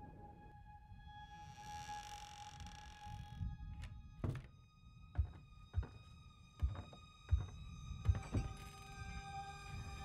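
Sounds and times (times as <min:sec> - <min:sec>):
footsteps on wooden stairs: 0:04.2 - 0:08.6.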